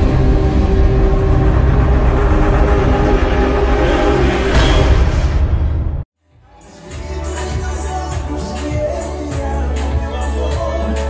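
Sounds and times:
droning chord: 0.0s - 5.0s
deep rumble: 0.0s - 6.1s.

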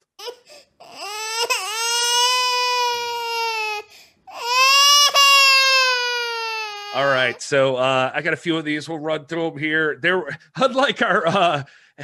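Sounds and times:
baby-like crying wails: 0.0s - 7.4s.

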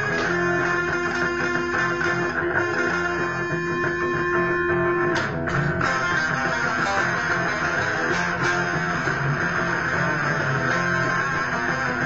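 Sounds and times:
electric guitar rock-blues jam: 0.0s - 12.0s.

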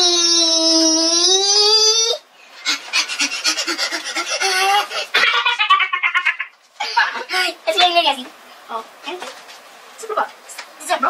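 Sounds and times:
young boy vocalizing: 0.0s - 6.0s.

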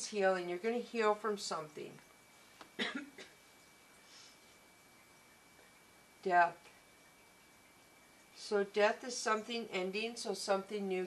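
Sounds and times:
woman coughing: 2.8s - 3.4s.

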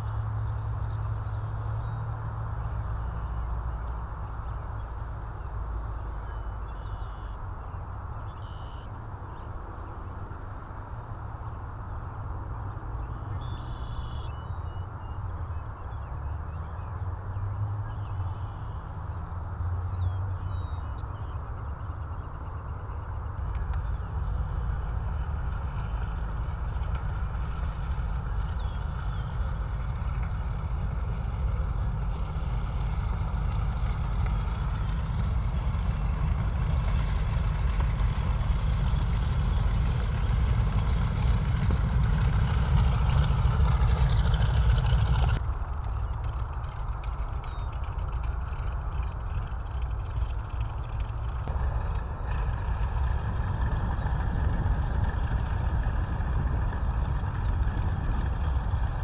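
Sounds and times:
distant propeller aircraft engines droning: 0.0s - 59.0s
heavy low rumble: 21.5s - 59.0s.

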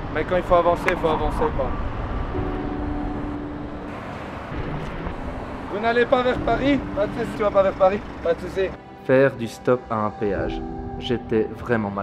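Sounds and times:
traffic rumble: 0.0s - 8.8s.

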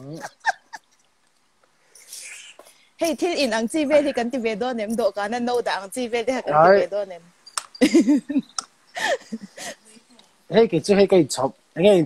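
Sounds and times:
person laughing: 0.0s - 0.8s, 7.8s - 9.9s.

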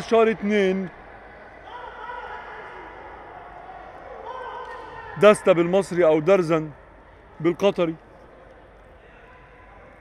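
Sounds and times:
echoing sports hall ambience: 0.0s - 10.0s.

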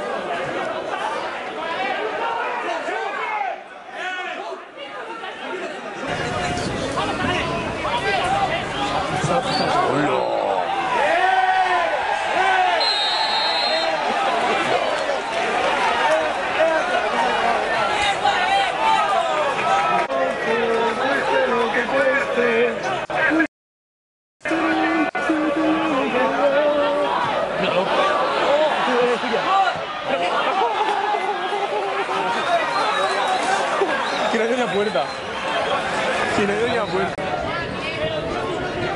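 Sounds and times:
people talking and calling: 0.0s - 23.5s, 24.4s - 38.9s
referee's whistle blast: 12.7s - 14.0s.

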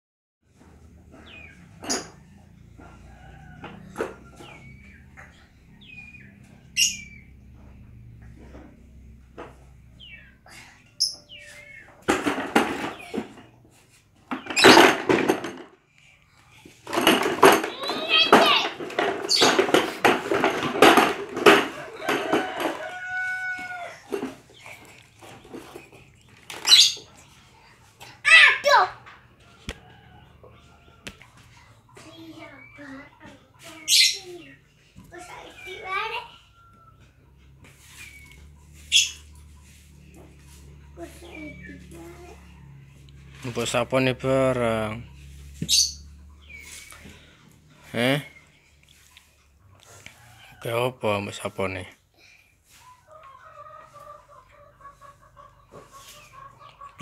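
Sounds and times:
birds chirping: 0.5s - 17.0s, 17.7s - 57.0s
plastic toy banging: 12.0s - 13.5s, 14.3s - 15.8s, 16.8s - 22.8s.

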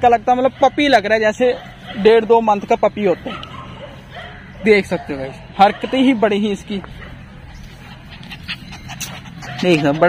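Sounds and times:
dog panting quietly: 3.0s - 10.0s.

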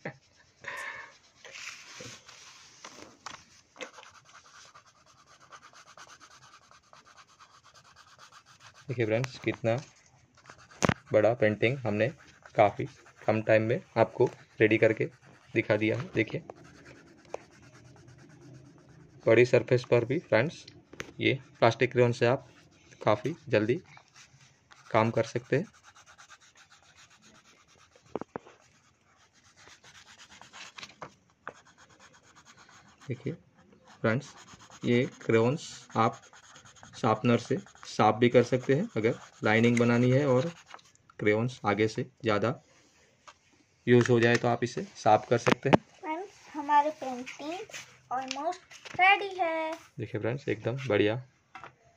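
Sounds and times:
crayon scratching on paper: 0.0s - 40.9s, 46.5s - 48.1s
child breathing: 0.6s - 2.0s.

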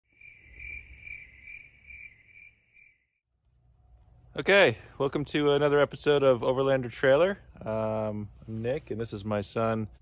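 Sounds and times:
insect chirping trill: 0.1s - 3.2s.

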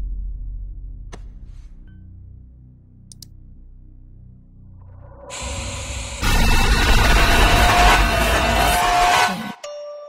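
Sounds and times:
deep rumble: 0.0s - 9.3s
low dark drone: 0.0s - 9.6s.

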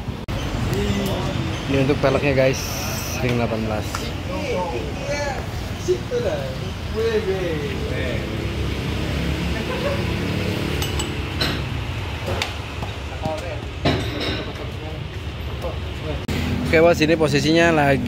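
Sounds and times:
street noise: 0.0s - 18.0s
sharp metal clinks and knocks: 10.7s - 11.8s.

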